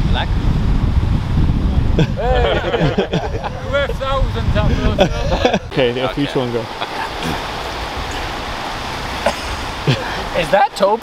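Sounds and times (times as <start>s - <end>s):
surf washing over rocks: 0.0s - 11.0s
person laughing: 2.0s - 4.0s, 4.6s - 5.7s, 6.8s - 7.5s, 9.2s - 10.3s.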